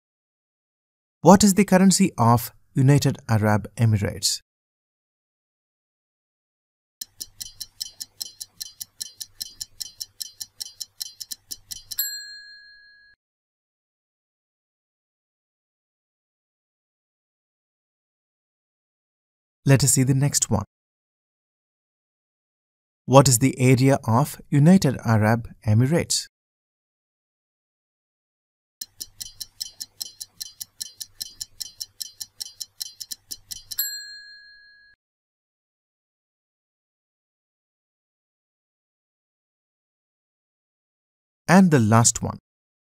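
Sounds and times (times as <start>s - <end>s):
stopwatch ticking: 7.0s - 12.1s, 28.8s - 33.9s
bell ding: 12.0s - 13.2s, 33.8s - 35.0s.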